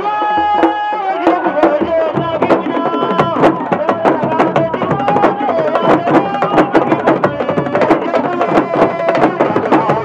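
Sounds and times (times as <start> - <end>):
drums struck with sticks and hands: 0.0 - 10.0
person singing: 0.0 - 10.0.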